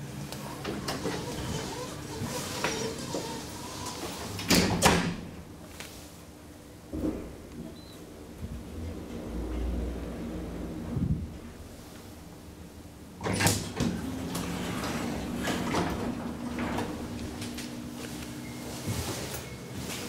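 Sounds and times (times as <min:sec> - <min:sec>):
elevator doors rumbling: 0:00.0 - 0:05.5, 0:06.8 - 0:20.0
elevator doors banging: 0:13.2 - 0:17.8
door motor hum: 0:13.2 - 0:20.0.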